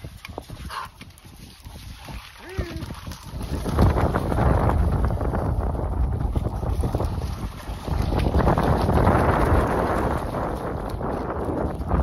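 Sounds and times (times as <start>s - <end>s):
dog splashing through water: 0.0s - 12.0s
wind buffeting microphone: 0.0s - 12.0s.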